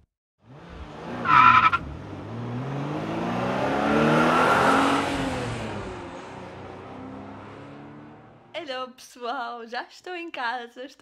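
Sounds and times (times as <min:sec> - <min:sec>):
car engine revving: 0:00.4 - 0:08.5
road noise inside moving car: 0:00.4 - 0:08.6.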